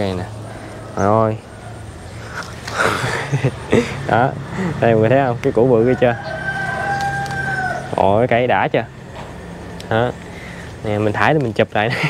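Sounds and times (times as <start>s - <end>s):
rooster crowing: 5.6s - 8.3s.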